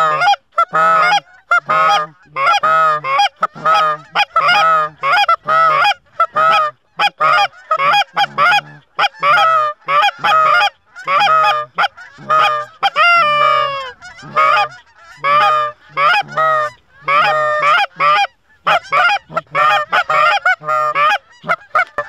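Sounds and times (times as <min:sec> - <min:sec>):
geese honking: 0:00.0 - 0:22.0.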